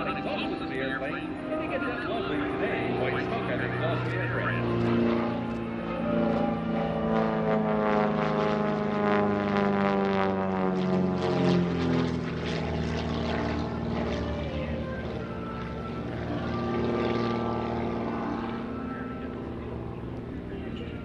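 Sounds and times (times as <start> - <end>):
airplane piston engine and propeller: 0.0 - 21.0.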